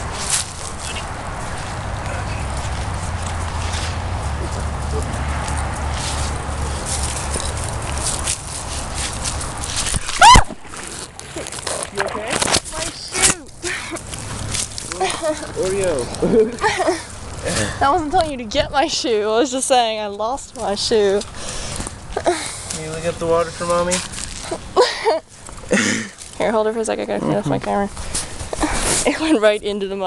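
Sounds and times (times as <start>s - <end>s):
scuffling in leaves: 0.0s - 17.8s
rustling of dry leaves: 0.0s - 30.0s
loud high yelp: 10.1s - 10.6s
person laughing: 16.2s - 17.7s, 24.5s - 26.1s.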